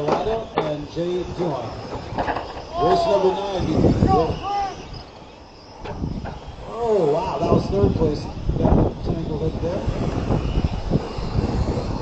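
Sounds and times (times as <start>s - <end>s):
outdoor background noise: 0.0s - 12.0s
announcer speaking: 2.7s - 4.9s.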